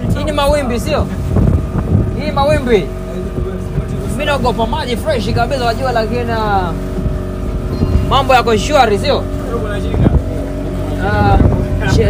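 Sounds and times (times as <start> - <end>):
boat motor running: 0.0 - 12.0.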